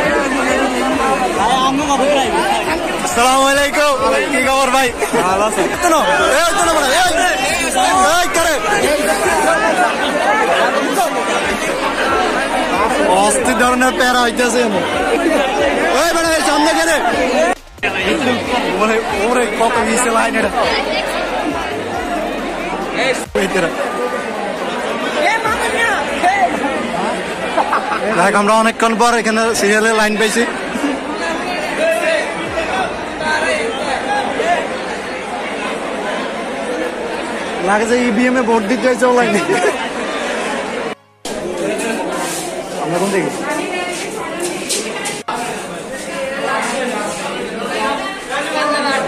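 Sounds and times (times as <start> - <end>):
crowd chatter: 0.0 - 49.0.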